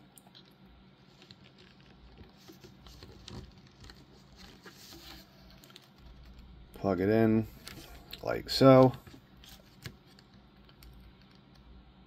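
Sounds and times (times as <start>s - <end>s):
plastic parts clicking and scratching: 1.1s - 6.4s.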